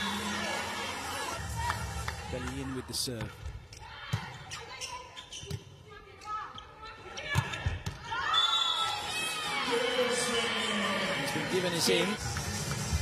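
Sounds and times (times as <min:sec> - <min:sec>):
crowd shouting and cheering: 0:00.0 - 0:03.2, 0:07.1 - 0:13.0.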